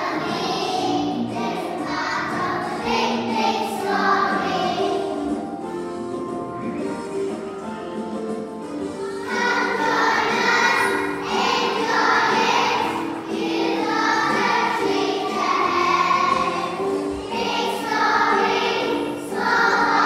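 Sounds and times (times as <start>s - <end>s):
children's choir singing: 0.0s - 7.7s, 8.4s - 20.0s.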